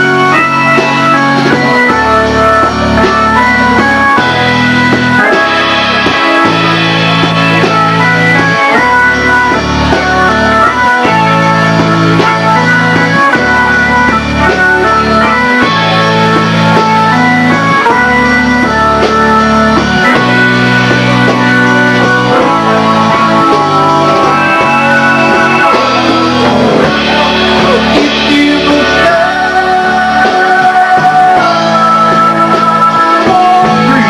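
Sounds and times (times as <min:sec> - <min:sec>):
bass line: 0:00.0 - 0:34.0
organ-like keyboard melody: 0:00.0 - 0:34.0.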